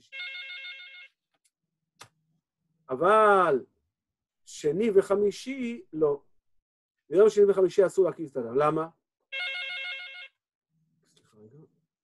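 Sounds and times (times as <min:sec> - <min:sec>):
warbling telephone ringtone: 0:00.1 - 0:01.1, 0:09.3 - 0:10.4.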